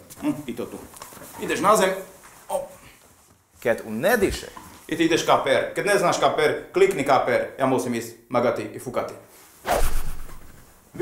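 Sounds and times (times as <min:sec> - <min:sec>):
whoosh sound effect: 0:09.7 - 0:10.6.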